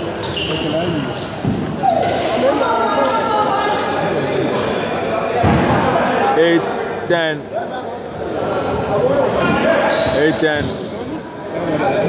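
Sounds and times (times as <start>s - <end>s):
voices chattering in echoing hall: 0.0s - 12.0s.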